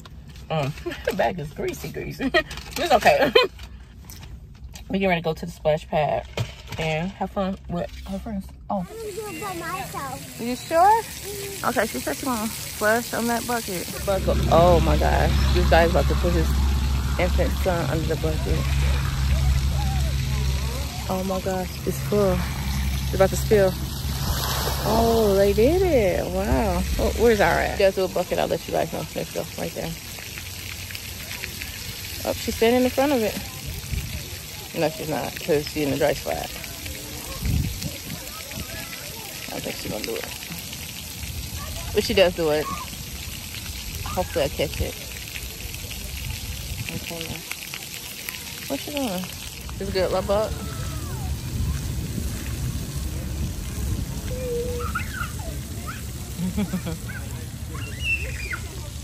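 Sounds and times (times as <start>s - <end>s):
fountain water pattering on concrete: 0.0s - 59.0s
distant children's voices: 8.8s - 11.7s, 18.4s - 21.2s, 36.5s - 39.6s, 41.3s - 44.2s, 50.5s - 59.0s
low rumbling noise: 10.0s - 35.4s, 48.6s - 59.0s.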